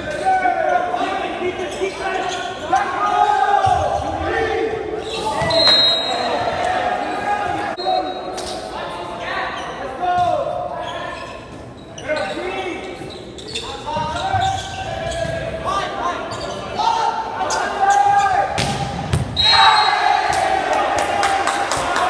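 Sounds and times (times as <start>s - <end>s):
people shouting and calling: 0.0s - 7.8s.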